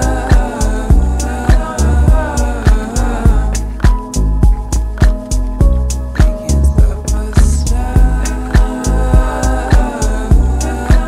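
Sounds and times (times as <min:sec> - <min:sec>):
slow electronic dance music: 0:00.0 - 0:11.0.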